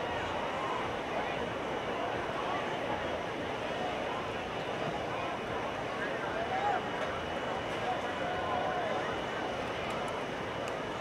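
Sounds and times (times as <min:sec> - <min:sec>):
distant crowd voices: 0:00.0 - 0:11.0
steady background noise: 0:00.0 - 0:11.0.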